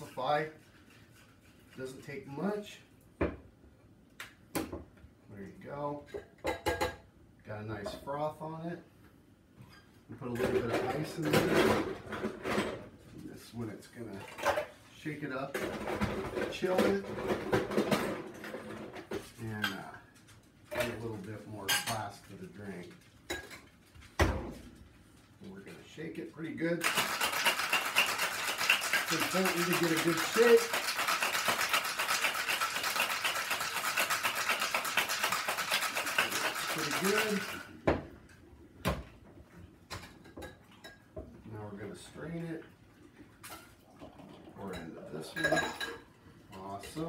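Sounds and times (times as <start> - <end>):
ice cubes clinking in metal shaker: 26.8 - 37.7.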